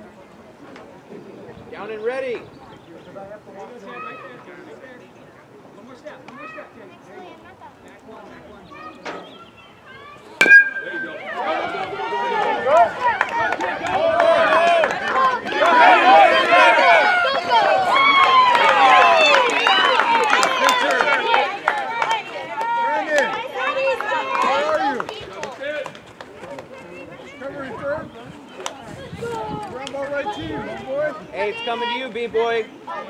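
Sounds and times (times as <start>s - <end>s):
metal bat hitting ball: 10.4s - 11.6s
crowd shouting and cheering: 10.4s - 25.0s.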